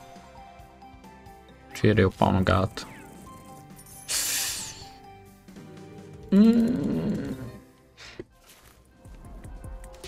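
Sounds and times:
soft game background music: 0.0 - 10.0.

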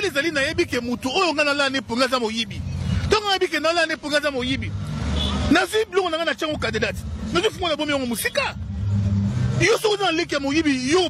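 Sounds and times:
vehicle engine hum: 0.0 - 11.0.

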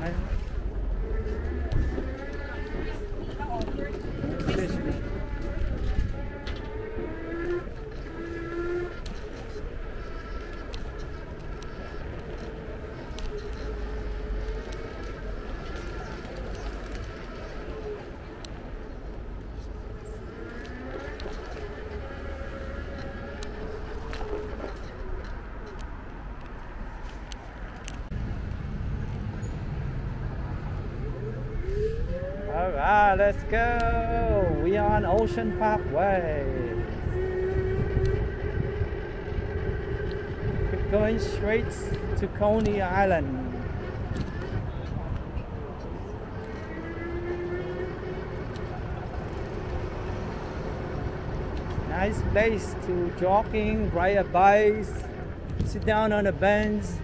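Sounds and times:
voices: 0.0 - 25.9, 31.0 - 57.0
rumble of wind and wheels: 0.0 - 57.0.

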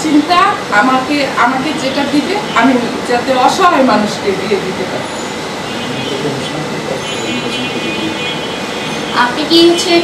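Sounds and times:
faint low talking: 4.5 - 8.4.

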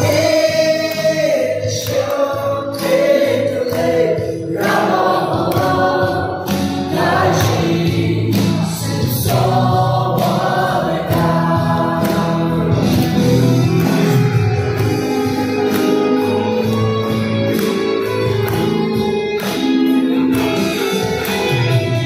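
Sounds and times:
group of young voices singing: 0.0 - 14.3
hand clapping: 0.0 - 22.0.

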